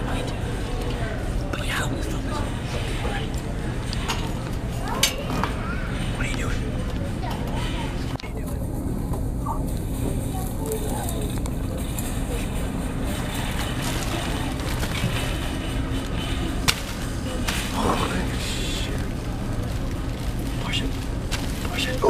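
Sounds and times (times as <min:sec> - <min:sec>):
faint indistinct voices: 0:00.0 - 0:22.0.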